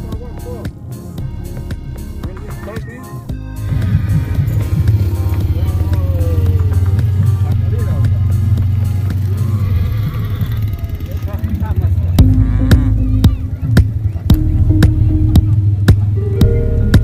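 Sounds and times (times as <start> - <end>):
music: 0.0 - 11.1, 11.8 - 17.0
voices: 0.0 - 17.0
small engine running: 3.6 - 13.6.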